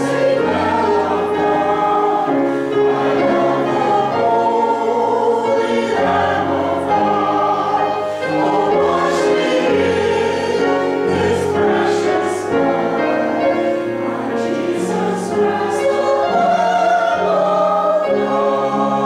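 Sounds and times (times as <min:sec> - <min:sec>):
choir singing slow chords: 0:00.0 - 0:19.0.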